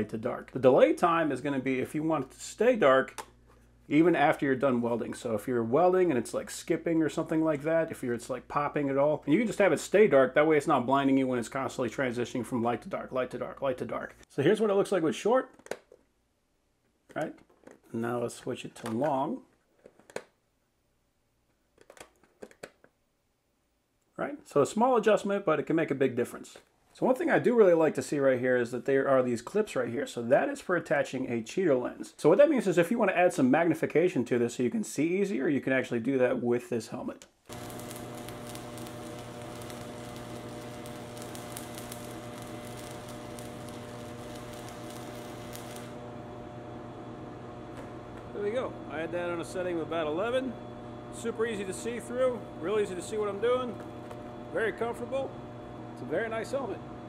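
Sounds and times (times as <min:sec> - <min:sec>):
welding arc crackling: 0:37.5 - 0:57.0
welding machine hum: 0:37.5 - 0:57.0.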